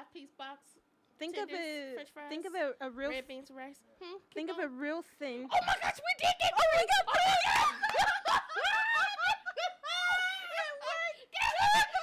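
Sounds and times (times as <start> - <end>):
people laughing: 5.6 - 12.0
person shouting: 9.9 - 12.0.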